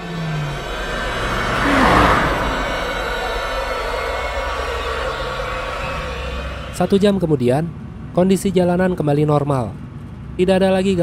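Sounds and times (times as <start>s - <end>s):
car speeding past: 0.0s - 7.3s
low horror music drone: 0.0s - 9.2s.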